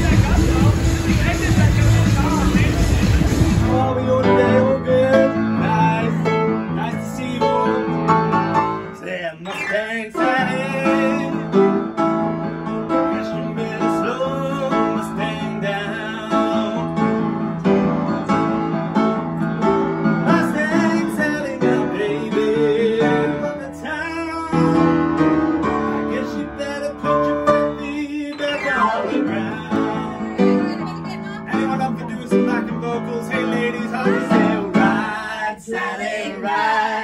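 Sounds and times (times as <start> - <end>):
man singing: 0.0 - 17.7, 20.2 - 37.0
piano playing: 0.0 - 37.0.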